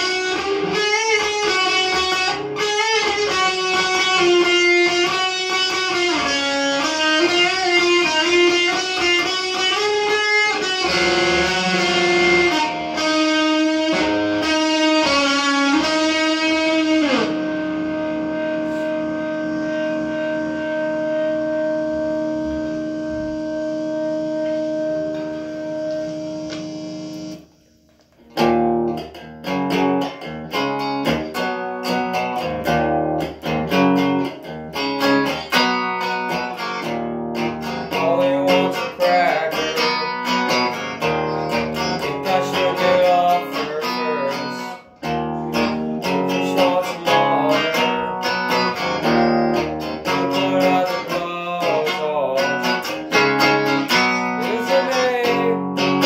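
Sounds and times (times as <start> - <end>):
electric guitar playing: 0.0 - 56.0.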